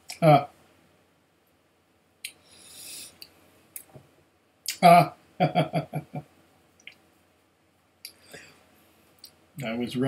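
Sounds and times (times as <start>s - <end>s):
man laughing: 0.2s - 0.5s, 4.7s - 6.2s.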